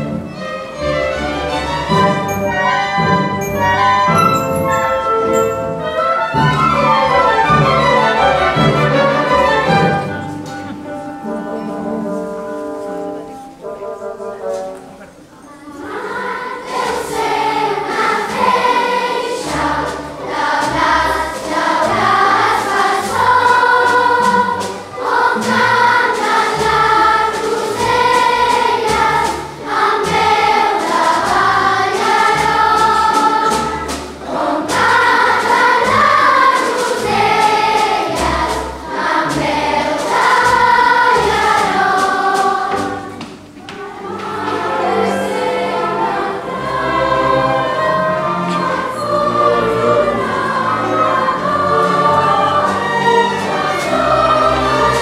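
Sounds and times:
children's choir singing: 0:00.0 - 0:55.0
orchestra playing: 0:00.0 - 0:55.0.

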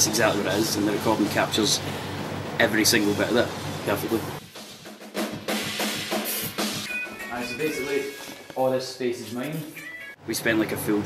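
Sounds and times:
metal drum kit playing: 0:03.2 - 0:08.9
cymbal crash: 0:04.5 - 0:08.5.

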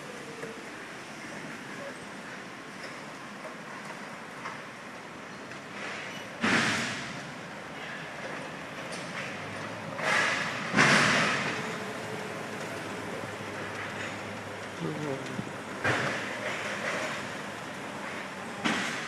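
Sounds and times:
golf cart running: 0:00.0 - 0:19.0.

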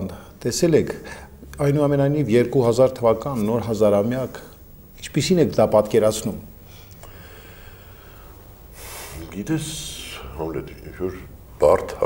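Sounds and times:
faint background hiss: 0:00.0 - 0:12.0
breath drawn in: 0:06.6 - 0:09.3.

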